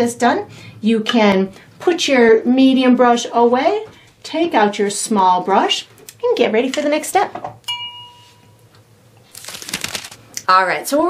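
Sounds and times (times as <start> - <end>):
glass clink ringing: 7.6 - 8.6.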